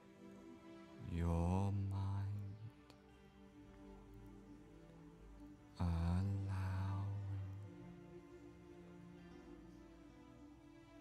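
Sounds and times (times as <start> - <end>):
ambient music pad: 0.0 - 11.0
deep chant-like voice tone: 1.0 - 3.0, 5.7 - 8.1.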